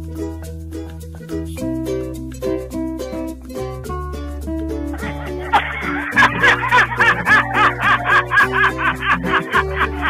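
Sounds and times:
background music with bass notes: 0.0 - 10.0
person laughing in bursts: 5.0 - 10.0.

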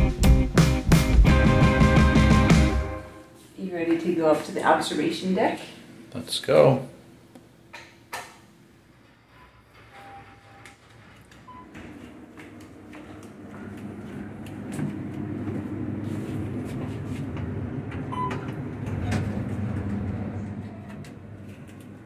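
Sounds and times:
elevator rumble with rattles: 8.9 - 22.0.

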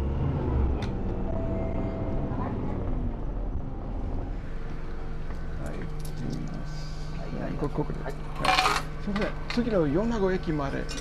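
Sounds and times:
bus low hum: 0.0 - 11.0.

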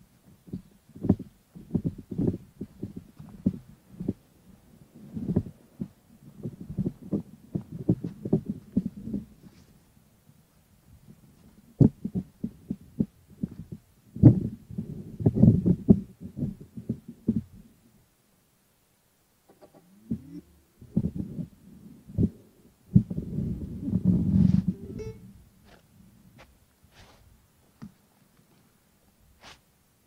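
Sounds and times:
wind buffeting microphone: 0.2 - 17.8, 19.7 - 26.4.

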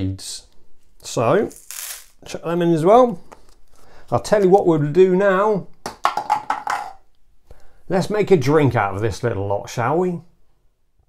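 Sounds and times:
man speaking: 0.0 - 1.6, 2.2 - 3.2, 4.1 - 5.7, 7.9 - 10.3.

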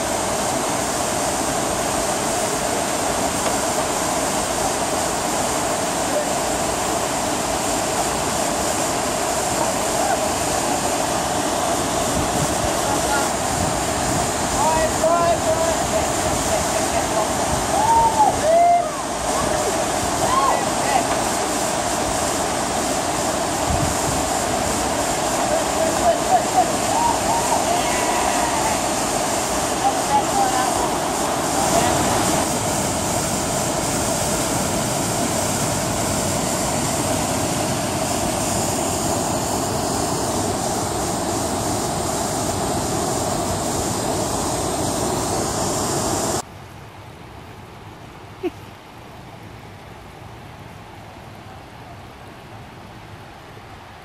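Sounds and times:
waterfall rushing: 0.0 - 46.4
people calling out: 26.2 - 28.9.

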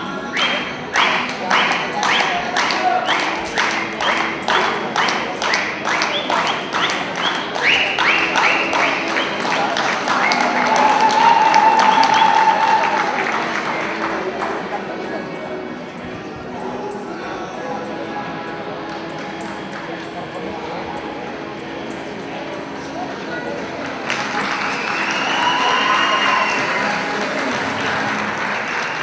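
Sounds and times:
audience clapping in rhythm: 0.3 - 15.1, 23.6 - 29.0
applause and cheering: 0.4 - 15.1, 23.5 - 29.0
held shout: 10.4 - 13.2.

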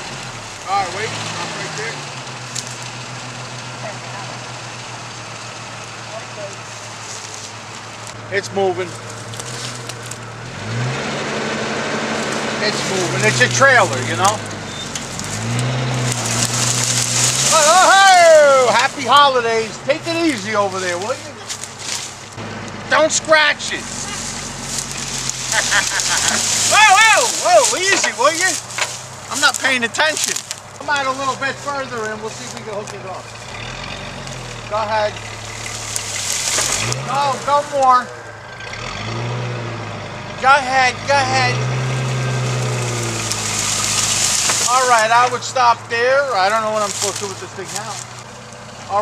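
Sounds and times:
dry brush crackling: 0.0 - 38.4, 41.1 - 49.0
car engine under load: 0.0 - 49.0.

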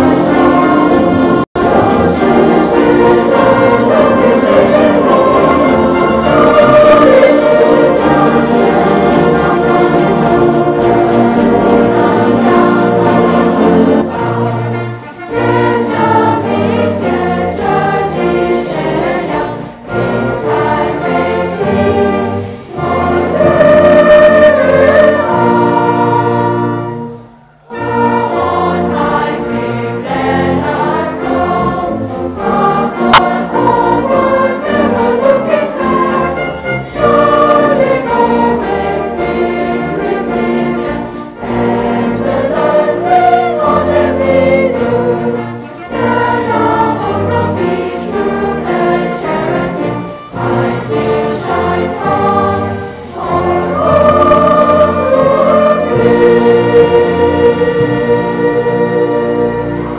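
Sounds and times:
choir singing: 0.0 - 59.9
concert band playing: 0.0 - 59.9.

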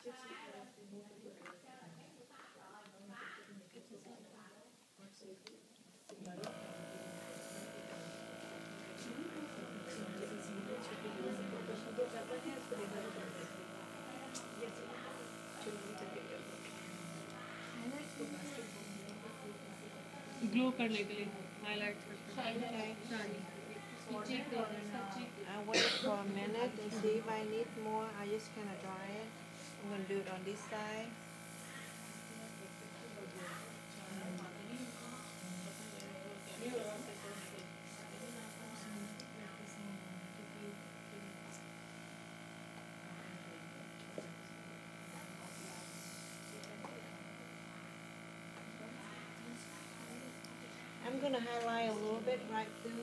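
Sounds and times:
faint voices talking: 0.0 - 53.0
steady electrical buzz: 6.2 - 53.0.

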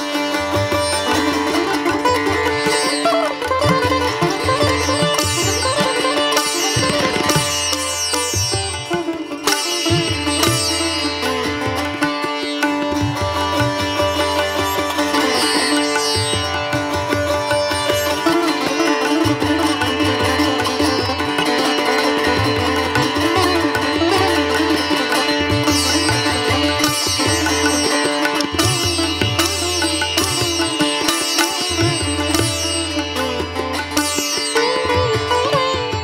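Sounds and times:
plucked string melody: 0.0 - 36.0.

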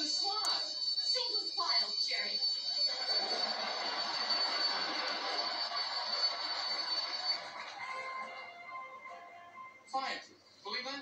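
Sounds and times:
fire alarm bell ringing: 0.0 - 8.8.

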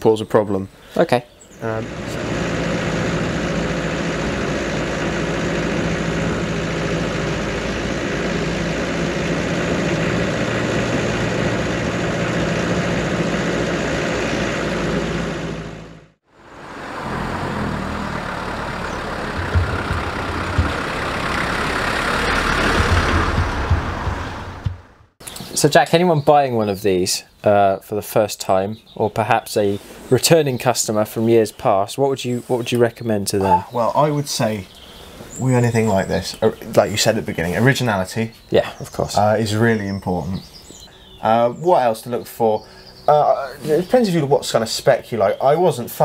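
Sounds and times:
diesel engine running: 1.6 - 25.2, 40.6 - 44.3.

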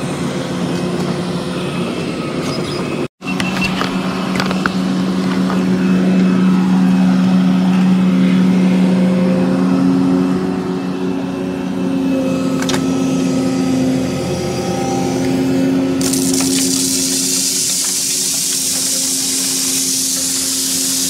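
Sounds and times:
excavator diesel engine running: 0.0 - 21.0.

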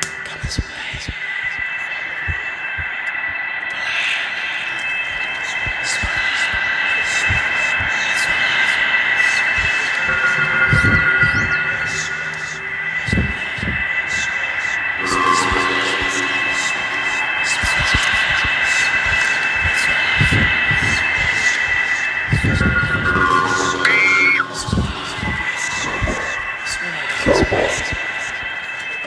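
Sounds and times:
high-pitched drone: 0.0 - 29.0.

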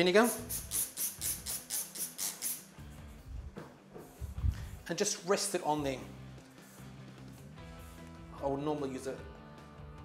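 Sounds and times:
faint background music: 0.0 - 10.0
spray bottle hissing squirts: 0.2 - 2.8.

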